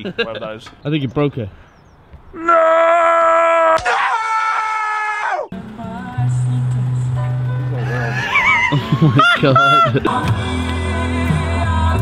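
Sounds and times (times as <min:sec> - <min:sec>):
man screaming: 0:02.4 - 0:05.5, 0:07.8 - 0:10.0.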